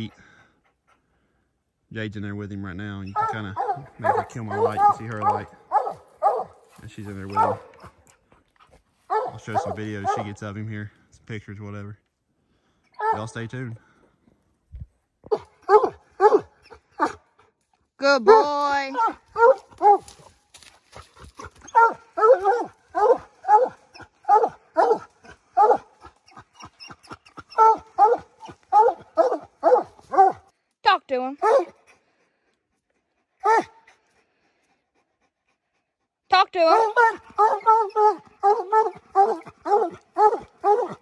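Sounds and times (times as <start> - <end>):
hound barking: 3.0 - 8.1, 9.1 - 10.4, 13.0 - 13.4, 15.3 - 17.3, 18.0 - 20.3, 20.9 - 30.5, 31.4 - 31.9, 33.4 - 34.0, 36.4 - 41.0.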